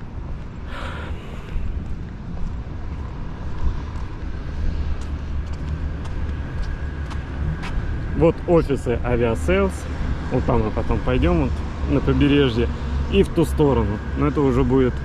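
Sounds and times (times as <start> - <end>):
wind rumble on microphone: 0.0 - 13.2
faint distant road traffic: 0.0 - 15.0.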